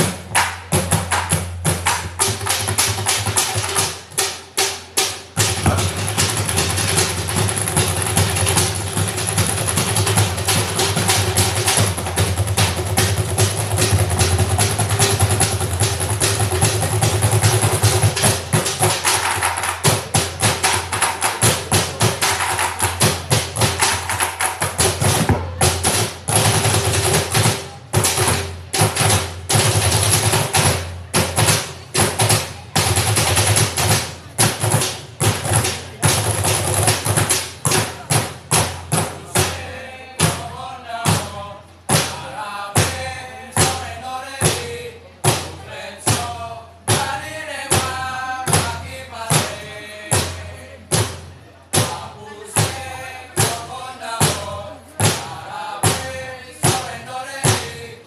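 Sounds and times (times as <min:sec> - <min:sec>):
drumming on plastic barrels: 0:00.0 - 0:58.0.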